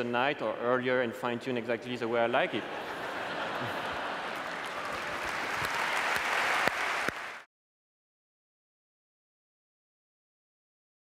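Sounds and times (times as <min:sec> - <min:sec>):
audience applauding: 0:03.2 - 0:07.5.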